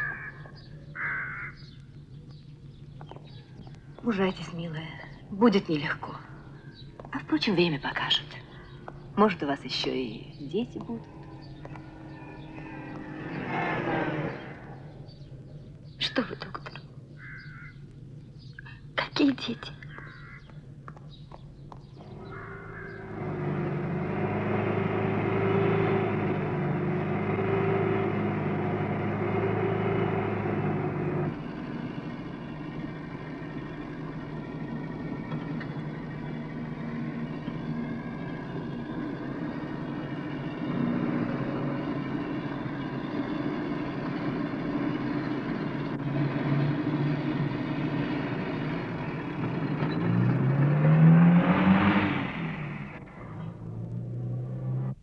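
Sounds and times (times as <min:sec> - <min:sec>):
van engine running and revving: 0:01.6 - 0:16.0, 0:21.1 - 0:55.0.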